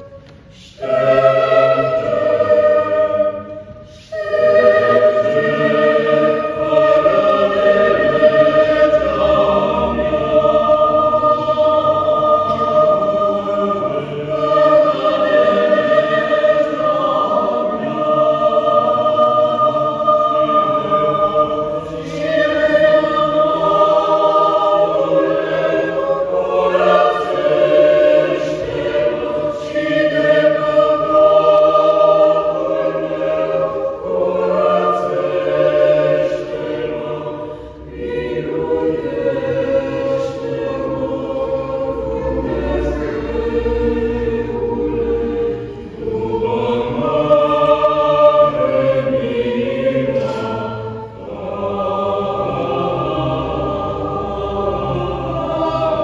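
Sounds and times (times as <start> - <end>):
choir singing a cappella: 0.0 - 56.0.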